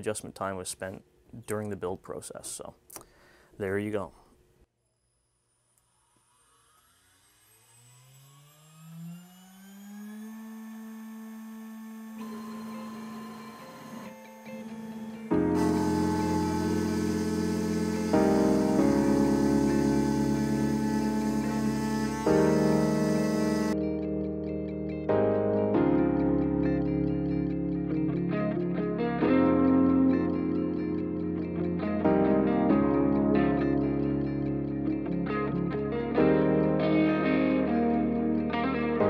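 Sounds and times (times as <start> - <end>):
mill spindle whine: 4.9 - 23.8.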